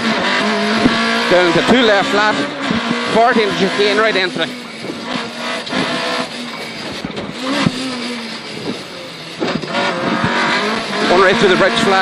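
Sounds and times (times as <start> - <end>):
car engine from inside cabin: 0.0 - 12.0.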